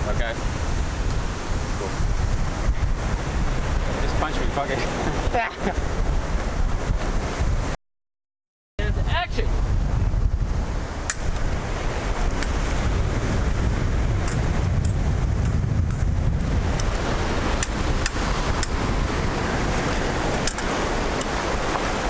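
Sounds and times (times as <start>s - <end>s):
surf breaking on beach: 0.0s - 7.8s, 9.0s - 22.0s
wind buffeting microphone: 0.0s - 7.8s, 8.8s - 22.0s.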